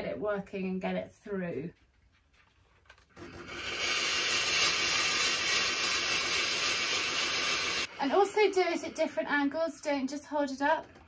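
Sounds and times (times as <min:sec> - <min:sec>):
steam iron hissing: 0:03.2 - 0:10.2.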